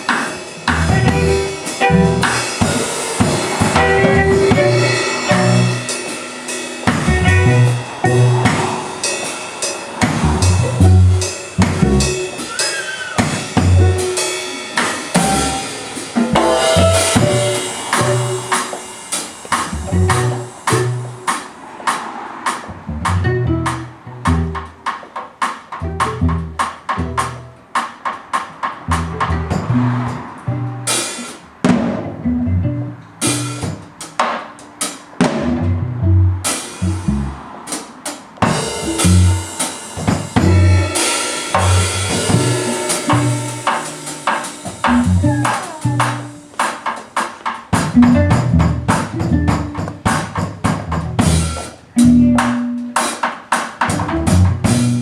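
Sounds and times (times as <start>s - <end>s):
rapid drum strokes: 0.0s - 32.2s, 33.0s - 35.7s, 36.4s - 55.0s
violin: 3.7s - 5.9s.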